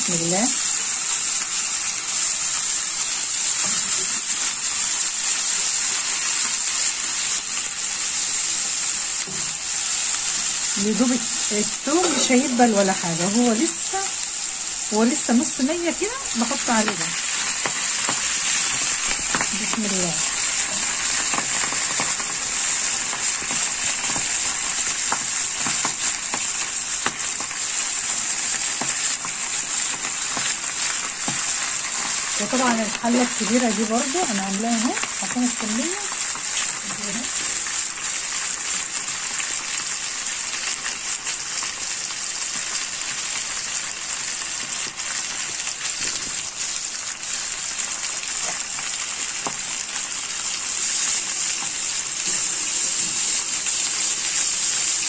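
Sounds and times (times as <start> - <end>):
garlic sizzling in hot oil: 0.0 - 55.0.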